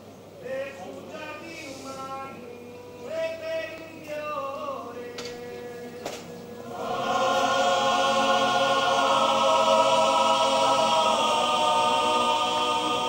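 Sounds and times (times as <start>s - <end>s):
male choir singing a cappella: 0.5s - 13.0s.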